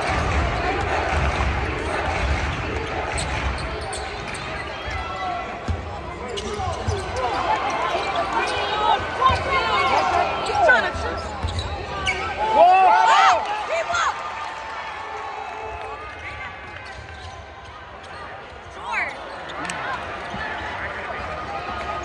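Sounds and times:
crowd voices: 0.0s - 22.0s
sneakers squeaking: 1.8s - 12.5s, 16.7s - 22.0s.

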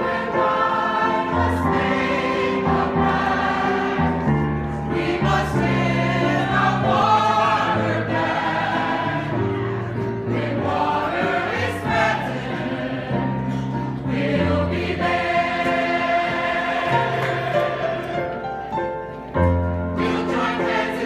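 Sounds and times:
choir singing: 0.0s - 19.1s, 19.9s - 21.0s.

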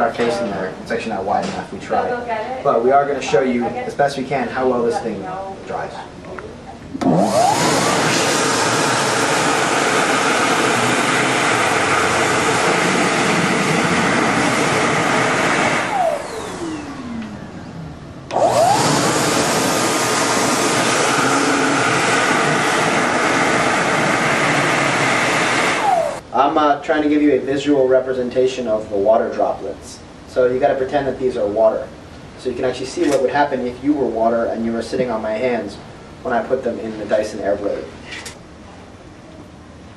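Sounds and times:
hand dryer running: 7.0s - 26.2s.

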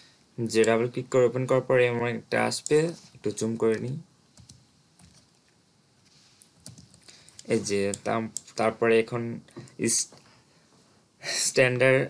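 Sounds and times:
keyboard keys clicking: 3.6s - 5.3s, 6.6s - 8.5s.

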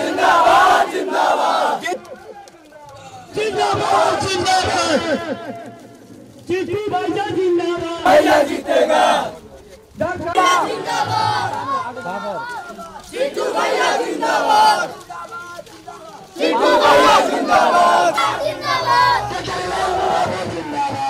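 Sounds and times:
crowd of men shouting slogans: 0.0s - 2.0s, 3.3s - 5.5s, 8.0s - 9.4s, 10.1s - 21.0s.

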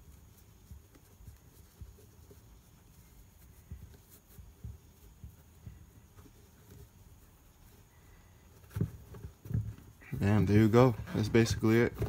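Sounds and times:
hands handling sneaker laces: 0.0s - 12.0s.

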